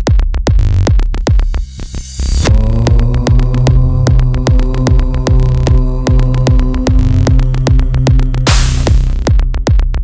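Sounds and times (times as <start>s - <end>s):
kick drum and rolling bassline: 0.0s - 10.0s
humming synth drone: 2.2s - 9.8s.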